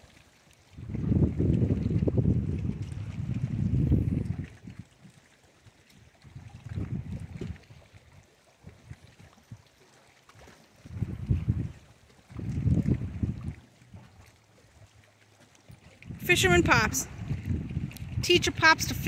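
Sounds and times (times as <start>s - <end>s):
wind buffeting microphone: 0.7s - 5.0s, 6.2s - 9.6s, 10.8s - 14.3s, 15.7s - 19.0s.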